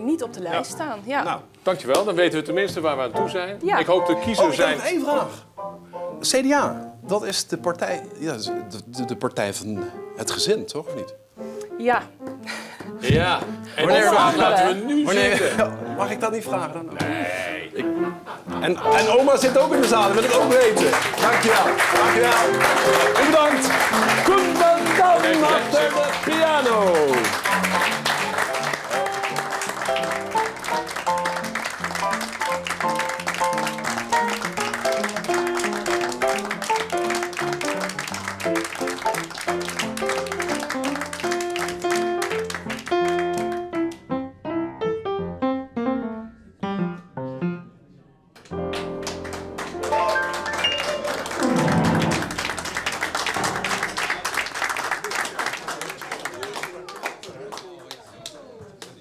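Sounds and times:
upright piano lively tune: 0.0s - 47.7s, 48.4s - 55.9s
audience applause: 18.8s - 43.7s, 48.6s - 59.0s.

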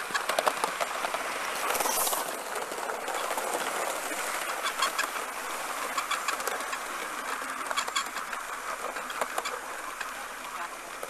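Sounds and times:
model steam train hissing and rumbling: 0.0s - 11.0s.

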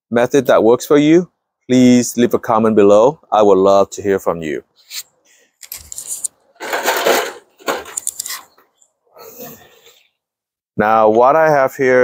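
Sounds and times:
aluminum foil tray crinkling: 5.6s - 8.6s.

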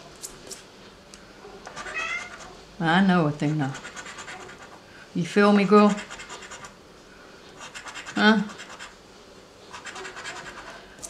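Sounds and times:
coin scratching lottery ticket: 3.5s - 4.8s, 5.9s - 6.8s, 7.6s - 8.9s, 9.7s - 10.8s.

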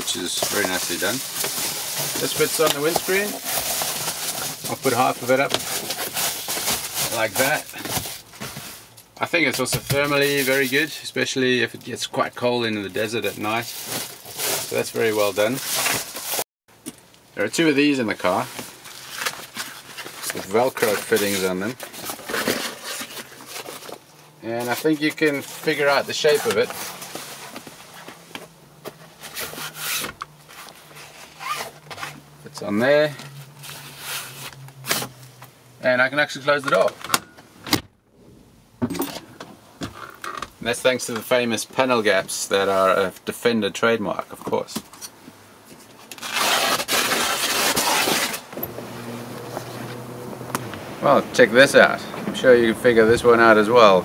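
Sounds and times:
fabric rustling: 0.0s - 9.0s
canvas cover rustling and crumpling: 0.0s - 9.1s, 12.7s - 16.4s, 18.2s - 28.3s, 29.0s - 35.3s, 46.1s - 48.8s.

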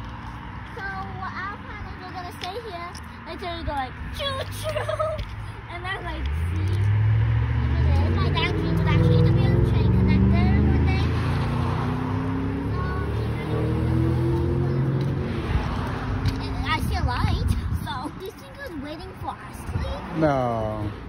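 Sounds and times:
vehicle passing by: 0.0s - 21.0s.

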